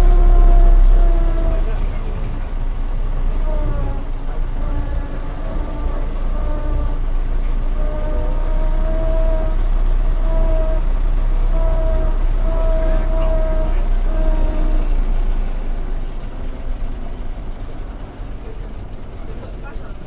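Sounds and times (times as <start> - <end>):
bus engine low rumble: 0.0 - 20.0
steady whine: 0.0 - 20.0.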